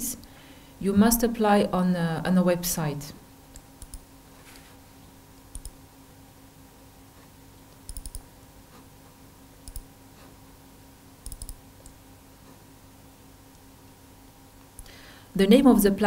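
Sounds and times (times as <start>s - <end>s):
low electrical hum: 0.0s - 16.0s
laptop clicking: 3.5s - 4.0s, 5.5s - 5.8s, 7.7s - 8.2s, 9.6s - 9.9s, 11.2s - 12.0s.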